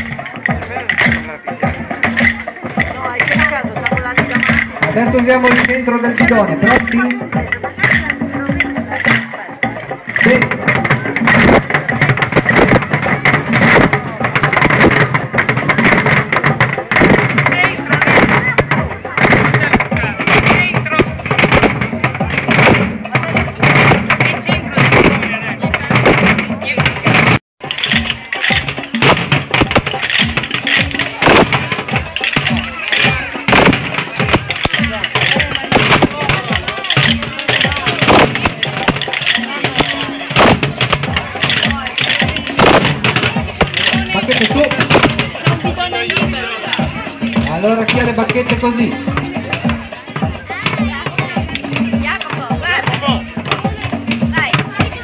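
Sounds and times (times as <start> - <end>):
crowd talking: 0.0 - 55.0
drumsticks beating barrels: 0.0 - 55.0.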